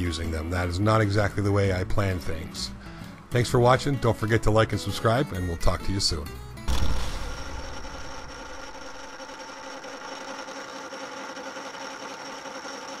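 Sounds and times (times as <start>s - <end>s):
loud low hit: 6.7s - 10.0s
machine hum with tones: 6.7s - 12.9s.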